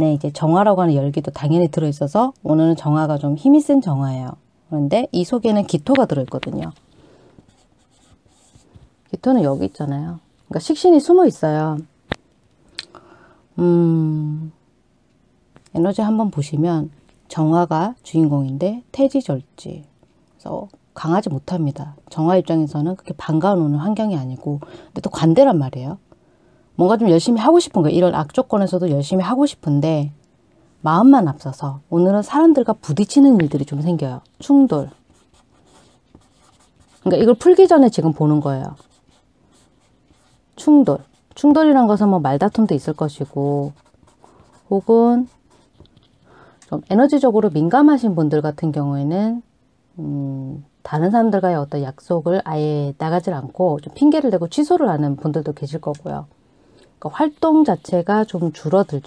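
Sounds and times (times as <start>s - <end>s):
chalk scratching on chalkboard: 34.8s - 37.4s.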